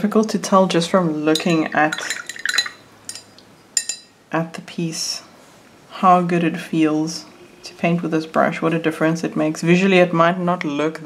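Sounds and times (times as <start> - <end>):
paintbrush clinking against dish: 1.3 - 4.2.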